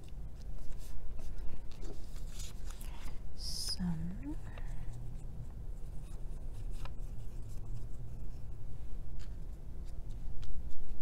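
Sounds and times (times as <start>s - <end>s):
paper rubbing and rustling: 0.0s - 3.2s, 5.7s - 11.0s
low steady hum: 0.0s - 11.0s.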